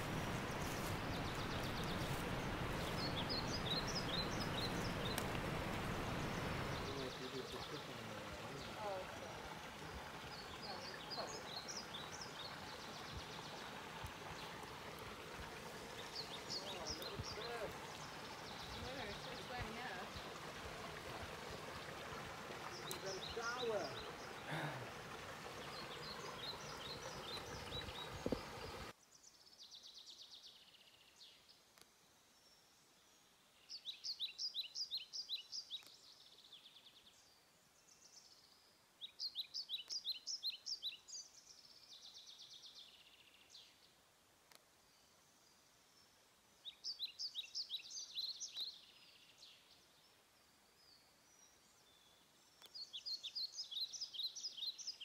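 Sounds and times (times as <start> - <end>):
waterfall running water: 0.0 - 29.0
forest birds singing: 0.0 - 55.0.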